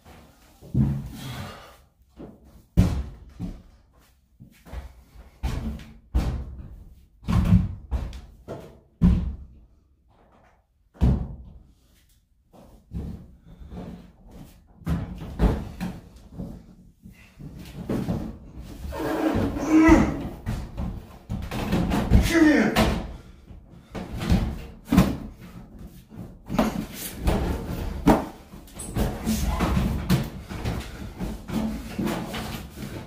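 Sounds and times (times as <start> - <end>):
man's long strained grunt: 19.4 - 20.3.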